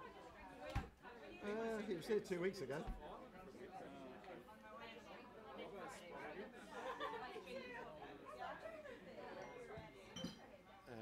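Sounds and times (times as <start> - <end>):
chatter of several voices: 0.0 - 10.1.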